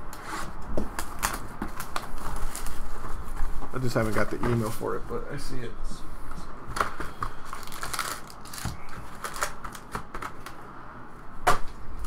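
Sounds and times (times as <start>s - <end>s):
plastic shrink-wrap crinkling: 1.0s - 4.8s, 6.8s - 10.6s.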